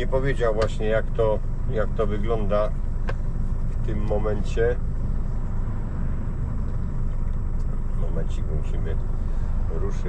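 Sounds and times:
diesel truck engine rumbling: 0:00.0 - 0:10.0.

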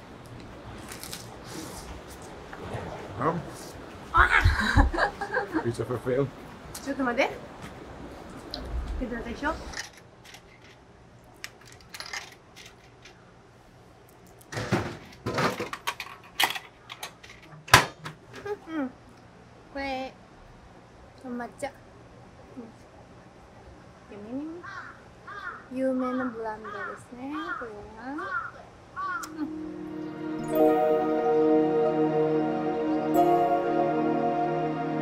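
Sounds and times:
crows cawing: 0:24.6 - 0:29.4.

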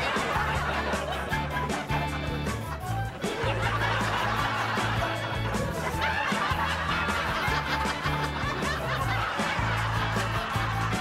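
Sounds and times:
music with repeating bass line: 0:00.0 - 0:11.0.

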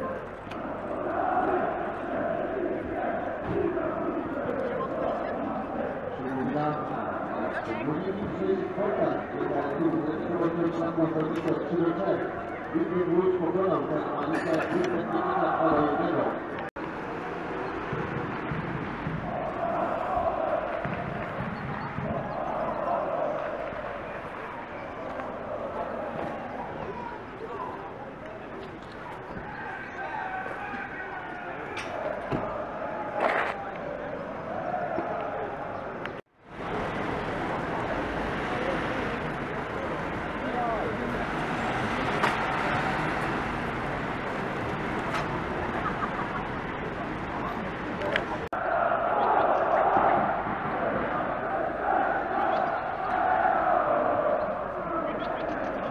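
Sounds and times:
people talking indistinctly: 0:00.0 - 0:16.7.

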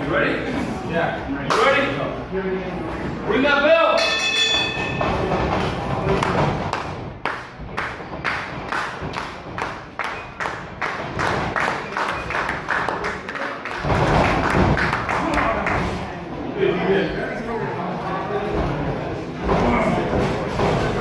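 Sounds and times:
crowd noise: 0:00.0 - 0:21.0
rhythmic hand clapping: 0:06.1 - 0:15.9.

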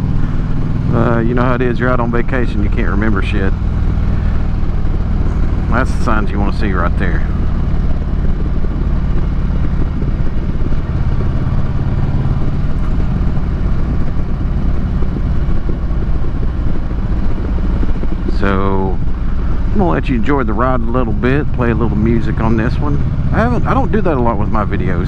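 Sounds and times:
motorcycle engine cruising: 0:00.0 - 0:25.0
wind noise: 0:00.0 - 0:25.0.

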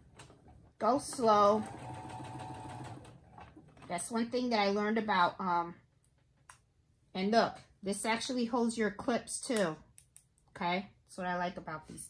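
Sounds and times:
sewing machine stitching: 0:01.0 - 0:03.9.

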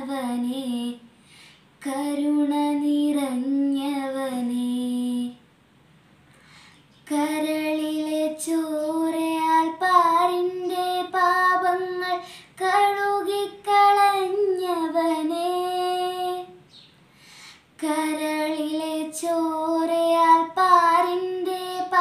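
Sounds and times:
girl singing unaccompanied: 0:00.0 - 0:01.2, 0:01.8 - 0:05.5, 0:07.0 - 0:16.7, 0:17.7 - 0:22.0.

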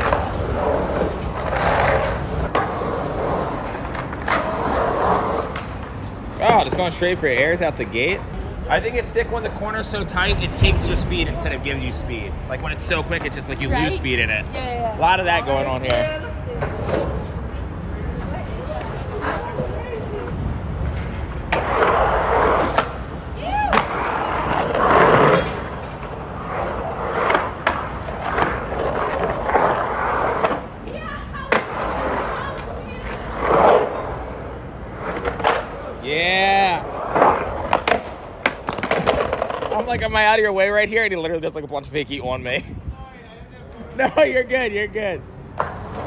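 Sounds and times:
skateboard wheels rolling on concrete: 0:00.0 - 0:46.0
skateboard clacks and knocks: 0:18.2 - 0:35.9, 0:37.0 - 0:40.0.

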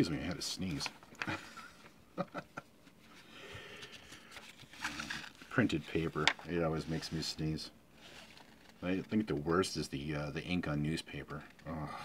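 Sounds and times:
paper pages rustling: 0:02.9 - 0:07.4, 0:08.0 - 0:09.6.

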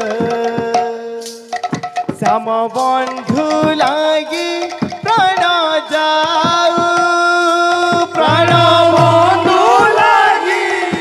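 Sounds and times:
drum strikes: 0:01.6 - 0:11.0
person singing long note: 0:08.2 - 0:10.4.

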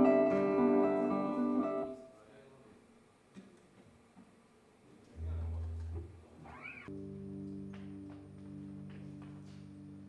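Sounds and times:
low bass note: 0:05.2 - 0:06.2
short pitch-bending squeal: 0:06.4 - 0:06.9.

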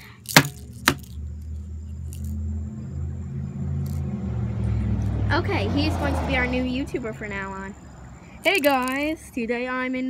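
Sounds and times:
plastic dolls clacking together: 0:00.0 - 0:01.2, 0:08.4 - 0:09.1.

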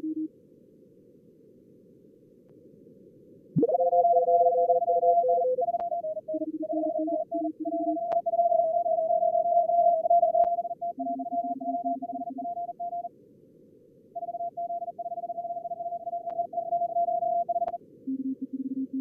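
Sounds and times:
low-pitched morse code tones: 0:00.0 - 0:00.3, 0:03.6 - 0:13.1, 0:14.2 - 0:19.0
high-pitched morse code tones: 0:03.6 - 0:13.1.

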